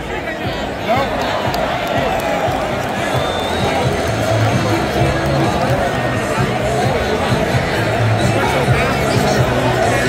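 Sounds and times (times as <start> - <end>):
large crowd noise: 0.0 - 10.0
music over loudspeakers: 0.0 - 10.0.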